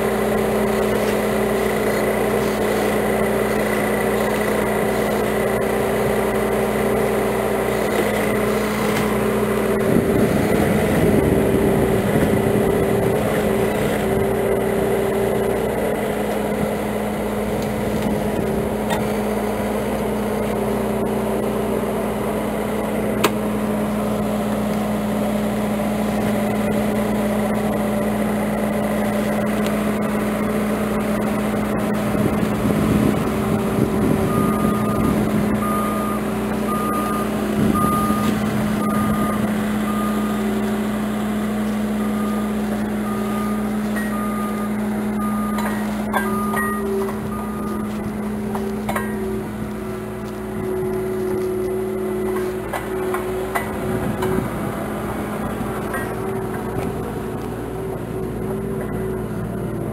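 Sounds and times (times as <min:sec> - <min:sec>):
engine running: 0:00.0 - 0:59.9
reversing alarm beeping: 0:34.1 - 0:40.6, 0:41.8 - 0:54.3.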